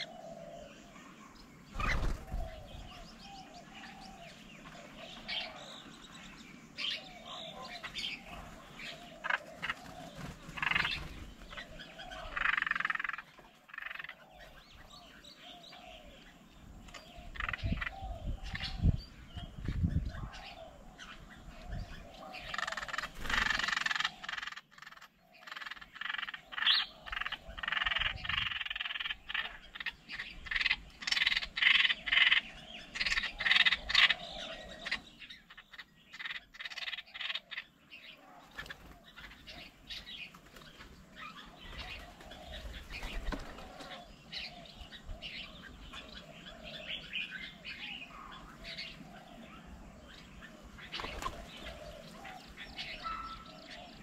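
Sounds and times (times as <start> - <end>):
animal calls: 7.0 - 14.6, 50.5 - 54.0.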